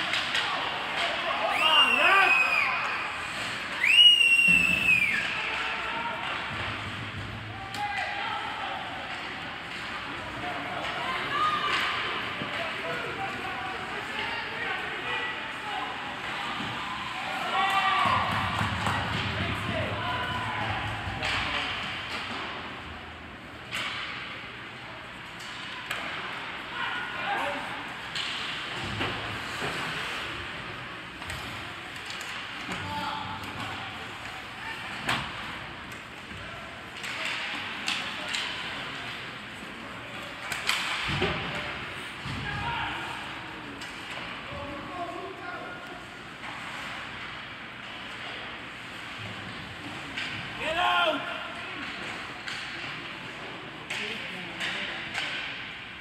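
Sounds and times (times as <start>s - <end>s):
hockey sticks and puck clacking: 0.0s - 56.0s.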